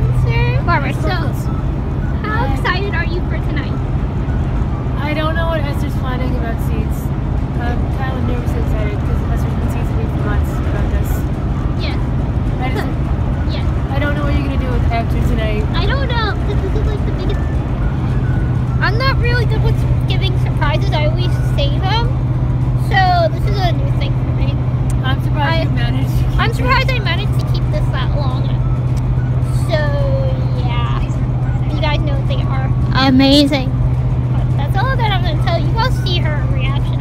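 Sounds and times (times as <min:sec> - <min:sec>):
van road and engine rumble: 0:00.0 - 0:37.0
voices: 0:00.0 - 0:37.0.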